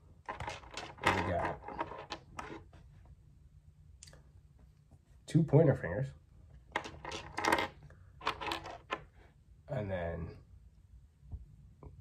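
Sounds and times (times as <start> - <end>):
plastic figure clattering on table: 0.3 - 2.6, 6.7 - 9.1.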